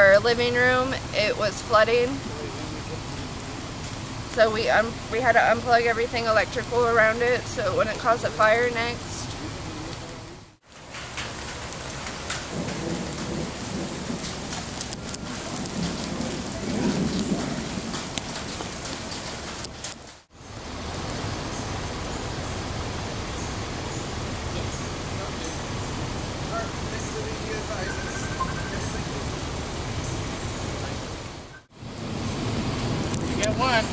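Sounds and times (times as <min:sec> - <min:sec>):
low rumble: 0:00.0 - 0:10.5
steady rain falling: 0:00.0 - 0:33.9.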